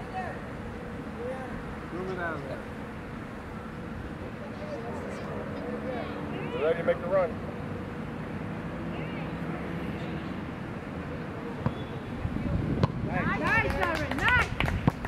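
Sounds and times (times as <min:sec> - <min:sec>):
wind: 0:00.0 - 0:15.0.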